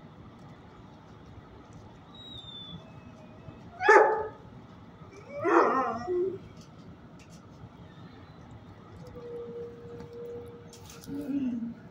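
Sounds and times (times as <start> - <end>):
dog barking: 3.8 - 4.4.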